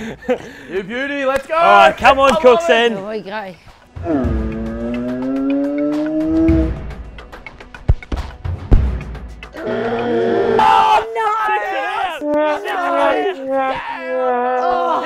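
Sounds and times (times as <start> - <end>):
people shouting and cheering: 9.6 - 15.0.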